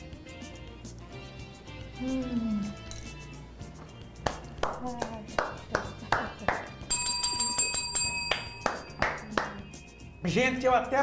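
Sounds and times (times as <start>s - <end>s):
hand claps: 3.7s - 10.0s
high ringing chime: 6.8s - 10.7s.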